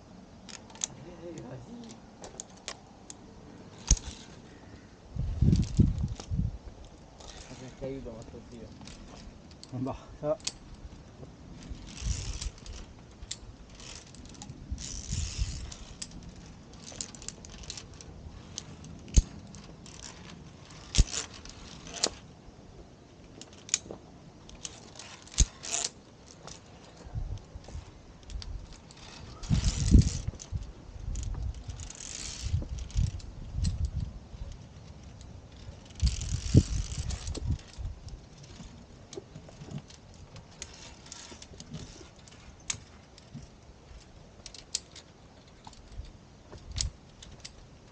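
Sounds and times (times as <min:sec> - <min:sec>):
carabiners clinking on steel cable: 0:00.5 - 0:04.4, 0:05.4 - 0:22.3, 0:23.2 - 0:47.9.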